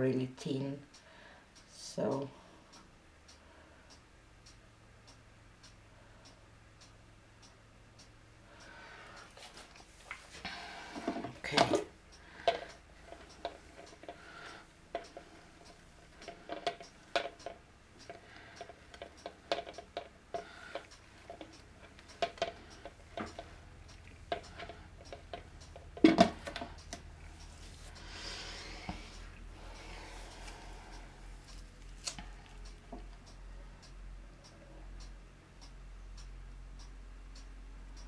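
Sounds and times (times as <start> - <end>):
light clicks and taps: 2.0 - 38.0.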